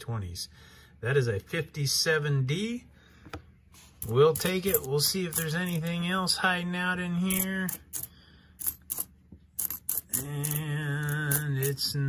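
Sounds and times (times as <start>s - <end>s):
coins clicking together: 4.0s - 6.0s, 7.2s - 11.9s.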